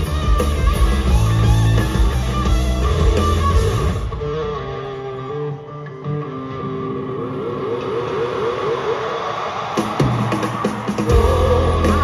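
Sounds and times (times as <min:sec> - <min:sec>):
electric guitar: 0:00.0 - 0:12.0
live rock band: 0:00.0 - 0:12.0.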